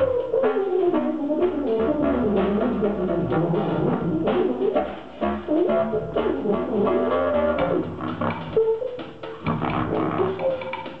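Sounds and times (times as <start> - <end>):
drums: 0.0 - 11.0
jazz wind instruments: 0.0 - 11.0.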